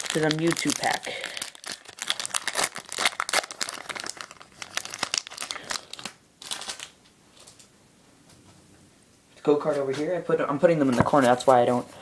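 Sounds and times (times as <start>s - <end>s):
foil wrapper crinkling and tearing: 0.0s - 7.0s.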